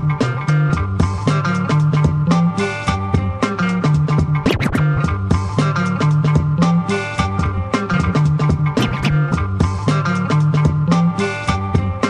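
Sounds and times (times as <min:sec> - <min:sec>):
funk music with beat and bass: 0:00.0 - 0:12.0
record scratching: 0:04.4 - 0:05.2, 0:08.8 - 0:09.4.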